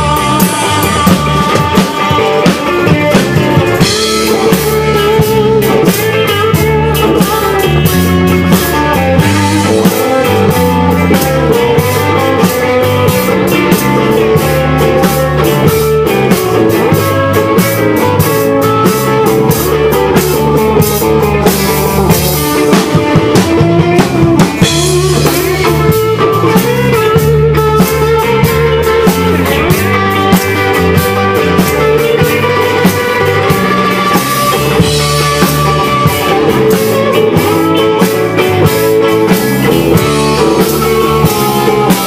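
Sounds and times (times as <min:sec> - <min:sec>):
bass line: 0:00.0 - 0:42.0
drum kit beat: 0:00.0 - 0:42.0
electric guitar: 0:00.0 - 0:42.0.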